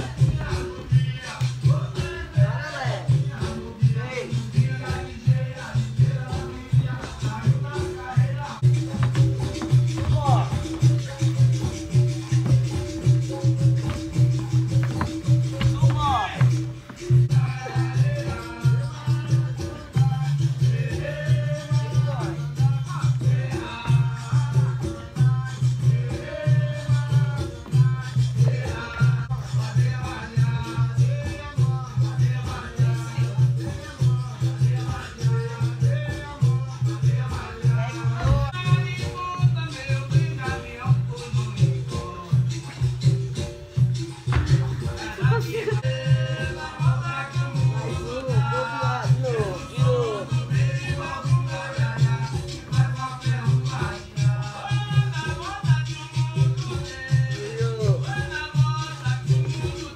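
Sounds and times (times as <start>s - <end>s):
low drum beat: 0.0s - 19.2s
person singing: 0.0s - 43.1s, 44.5s - 59.9s
latin-style music: 0.0s - 59.9s
shaker: 0.0s - 59.9s.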